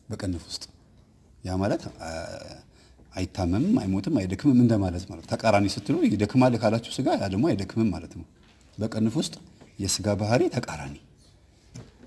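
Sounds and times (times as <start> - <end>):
man talking: 0.0 - 0.8, 1.4 - 11.1.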